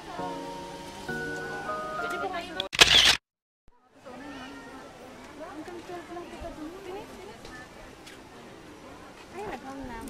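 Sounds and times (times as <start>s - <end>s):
crowd of people chattering: 0.0s - 2.6s, 3.8s - 10.0s
background music: 0.0s - 2.7s.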